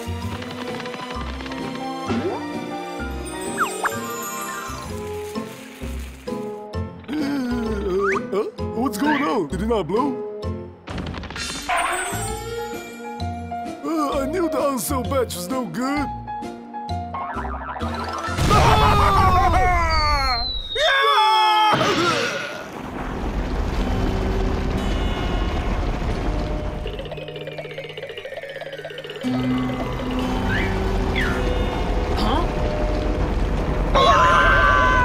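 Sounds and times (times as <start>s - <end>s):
background music: 0.0s - 21.5s, 23.8s - 35.0s
cartoon explosion: 17.2s - 20.8s, 21.7s - 27.4s, 32.0s - 35.0s
falling whistle sound effects: 19.8s - 21.2s.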